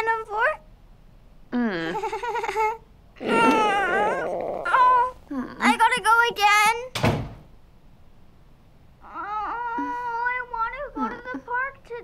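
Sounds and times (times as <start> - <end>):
girl whimpering and moaning: 1.6 - 5.8, 9.0 - 11.4.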